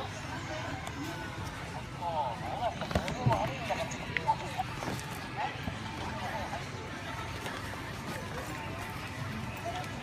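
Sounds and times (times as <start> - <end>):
faint distant voices: 0.0 - 10.0
store background noise: 0.0 - 10.0.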